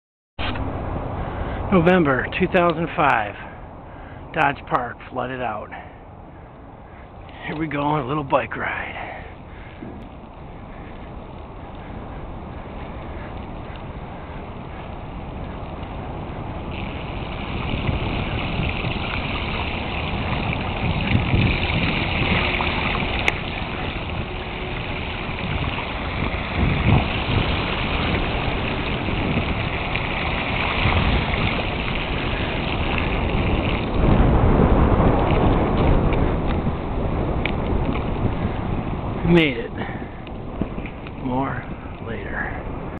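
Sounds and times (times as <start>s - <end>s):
rushing floodwater: 0.4s - 42.9s
wind buffeting microphone: 0.4s - 42.9s.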